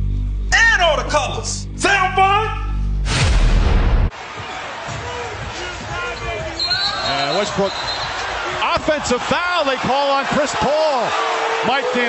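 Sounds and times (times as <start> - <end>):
referee's whistle: 6.0 - 8.4.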